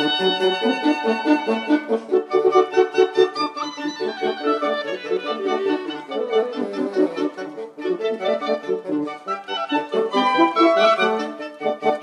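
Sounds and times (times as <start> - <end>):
bassoon: 0.0 - 12.0
clarinet: 0.0 - 12.0.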